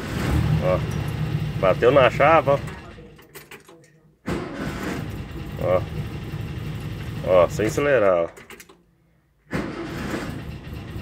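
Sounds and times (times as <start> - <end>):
engine starting and idling: 0.0 - 3.4, 4.2 - 8.7, 9.5 - 11.0
air-cooled engine stopping: 4.6 - 7.7.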